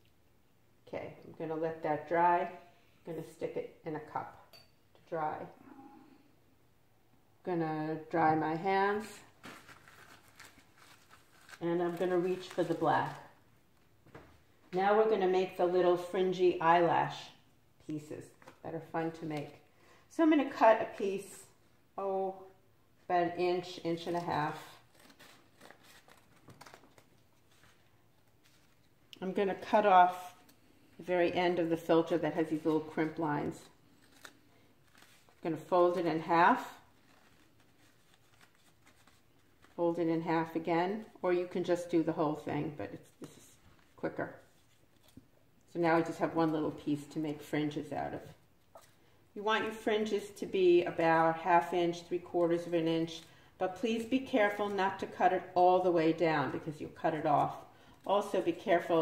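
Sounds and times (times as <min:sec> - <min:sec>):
paper filter rustling: 0:09.0 - 0:13.4, 0:24.0 - 0:29.0, 0:31.7 - 0:40.6.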